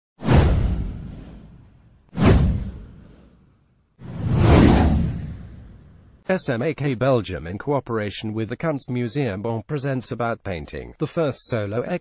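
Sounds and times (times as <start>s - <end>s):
whoosh sound effects: 0.2s - 3.4s, 4.0s - 6.2s.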